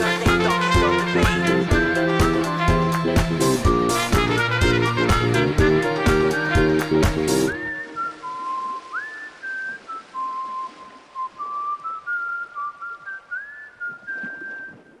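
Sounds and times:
brass band music: 0.0 - 7.5
person whistling a tune: 6.3 - 15.0.

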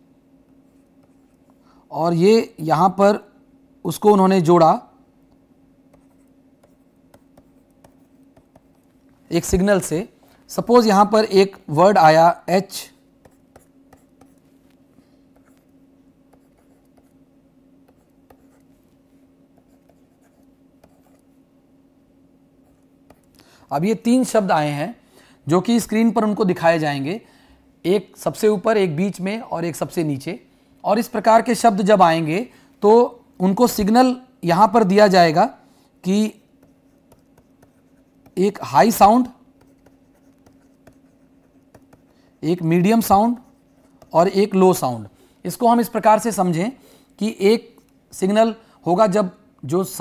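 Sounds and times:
low electrical hum: 0.0 - 50.0
stylus tapping and scratching: 0.4 - 1.6, 5.8 - 9.2, 13.2 - 17.2, 17.8 - 21.3, 22.7 - 23.4, 36.1 - 44.8
stylus tapping on pen tablet: 5.9 - 8.9, 36.6 - 38.4, 39.6 - 42.1, 43.3 - 44.2.

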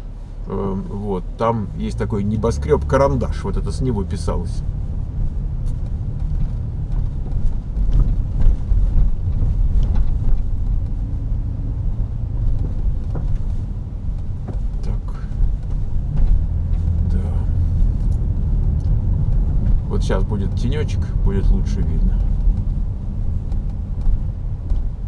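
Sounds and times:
car engine and tyre rumble: 0.0 - 25.0
faint knocks from road bumps: 4.2 - 25.0.

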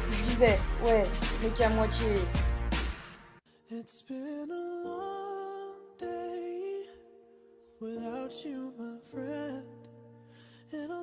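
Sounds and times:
soft music: 0.0 - 11.0.

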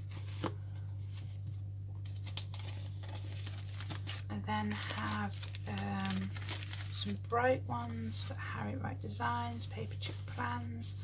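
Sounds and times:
plastic sheets rustling: 0.0 - 8.4, 9.3 - 10.9.

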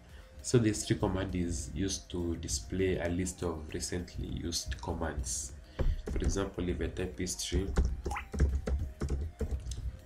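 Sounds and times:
keyboard typing: 7.6 - 9.9.

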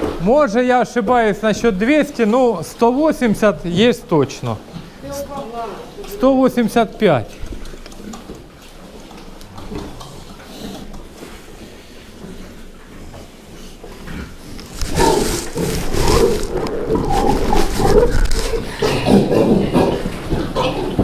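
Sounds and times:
pigs grunting and squealing: 9.3 - 11.0, 14.0 - 21.0.

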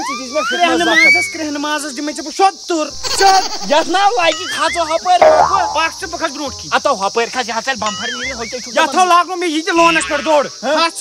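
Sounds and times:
high-pitched insect chorus: 0.0 - 11.0
men talking: 2.8 - 6.3.

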